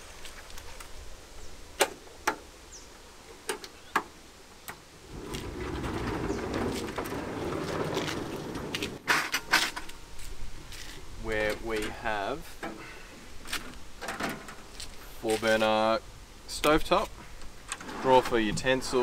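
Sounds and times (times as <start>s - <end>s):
kitchen unit rolling on drawer slides: 5.1s - 9.0s, 17.7s - 19.0s.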